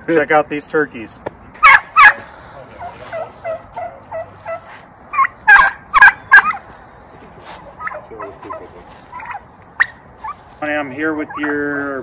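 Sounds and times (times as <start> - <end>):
turkey gobbling loudly: 1.6 - 12.0
turkeys calling softly: 1.6 - 12.0.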